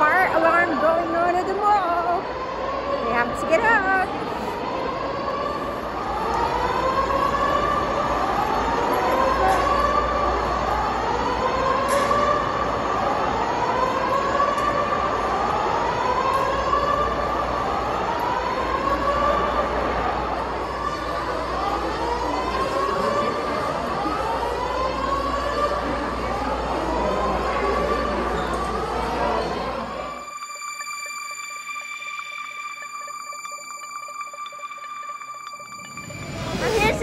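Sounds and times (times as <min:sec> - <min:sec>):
fire alarm rising electronic sweep: 0:00.0 - 0:37.0.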